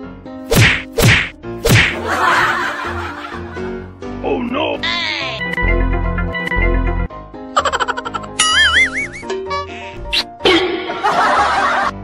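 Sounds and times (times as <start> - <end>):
background music: 0.0 - 12.0
loud sharp whacks: 0.5 - 2.0.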